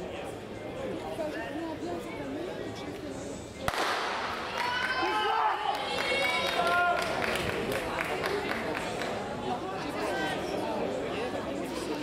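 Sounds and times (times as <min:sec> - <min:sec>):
spectators shouting and cheering: 0:04.3 - 0:07.6
quiet voices chattering: 0:06.1 - 0:12.0.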